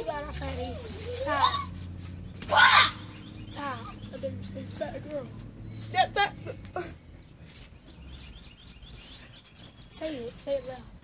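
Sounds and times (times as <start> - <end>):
birds chirping: 0.0 - 11.0
low outdoor rumble: 0.0 - 11.0.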